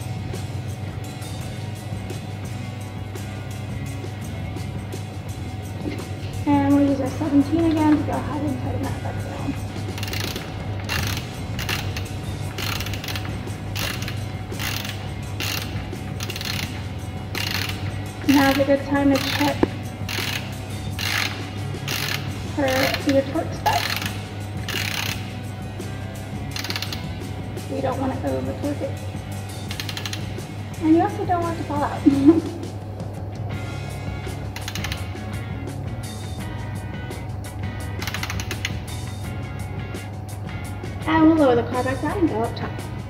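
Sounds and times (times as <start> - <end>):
background music: 0.0 - 43.0
hand ratchet clicking: 9.5 - 31.2, 33.8 - 36.5, 37.6 - 39.4.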